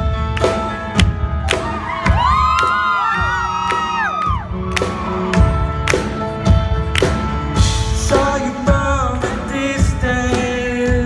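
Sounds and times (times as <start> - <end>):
live band playing: 0.0 - 11.0
steady drum beat: 0.0 - 11.0
audience screaming and whooping: 1.3 - 6.0.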